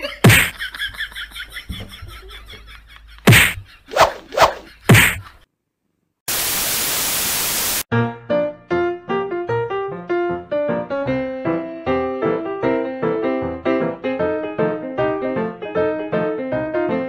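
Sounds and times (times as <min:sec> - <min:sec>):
static-like hiss: 0:06.3 - 0:07.8
piano music: 0:07.9 - 0:17.0.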